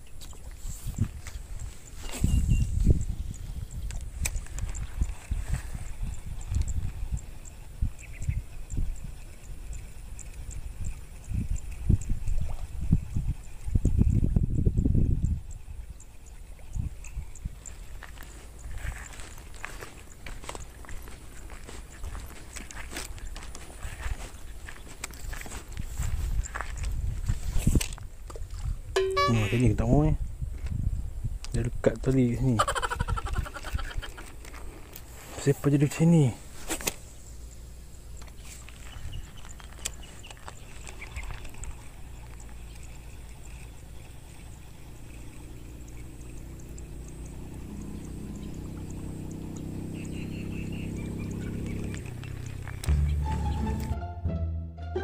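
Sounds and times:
footsteps on grass: 18.0 - 27.6.

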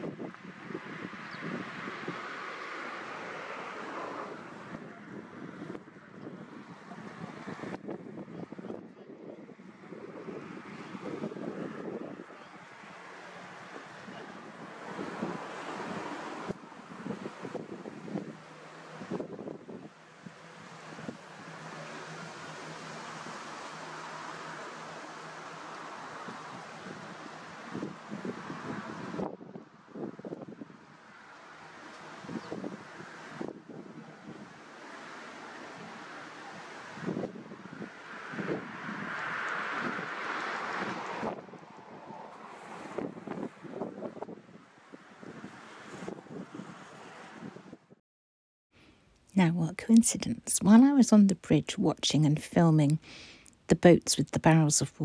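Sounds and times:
wind blowing across microphone: 0.0 - 48.0.

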